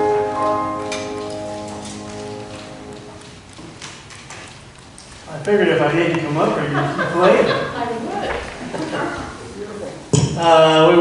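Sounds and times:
piano chord ringing: 0.0s - 3.5s.

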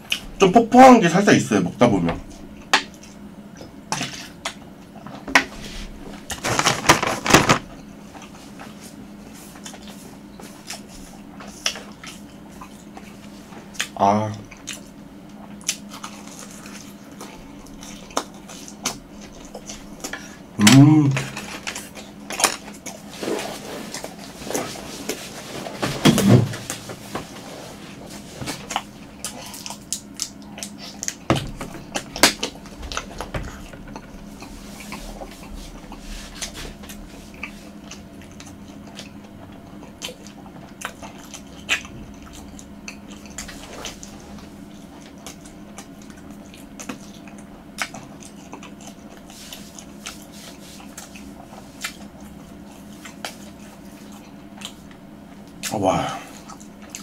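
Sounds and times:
wet chewing and crunching: 6.1s - 20.8s, 21.4s - 25.3s, 28.1s - 57.0s.

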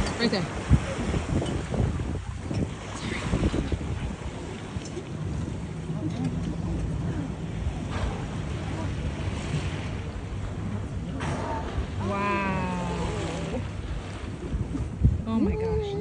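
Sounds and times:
boat engine droning: 0.0s - 16.0s
water rushing along hull: 0.0s - 16.0s
wind buffeting microphone: 0.0s - 16.0s.

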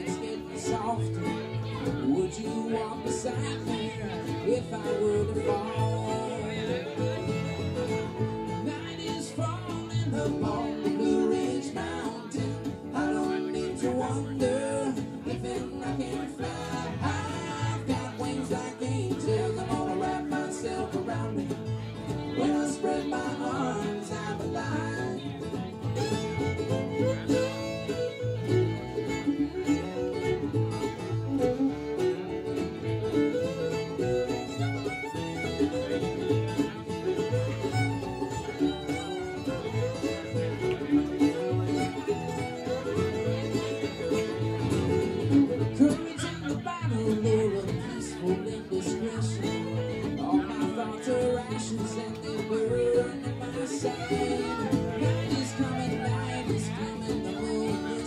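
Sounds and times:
fiddle: 0.0s - 58.0s
mandolin: 0.0s - 58.0s
pulsing upright bass: 0.0s - 58.0s
strummed acoustic guitar: 0.0s - 58.0s.

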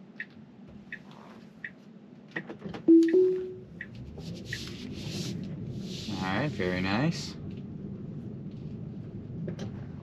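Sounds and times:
road and tyre noise in car: 0.0s - 10.0s.

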